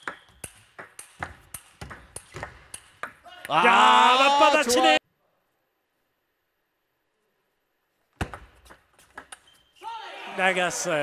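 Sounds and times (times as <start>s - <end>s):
table tennis rally: 0.0s - 5.0s, 8.1s - 11.0s.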